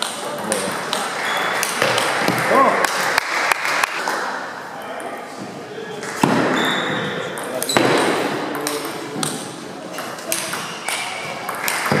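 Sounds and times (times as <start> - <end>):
background voices in large hall: 0.0 - 12.0.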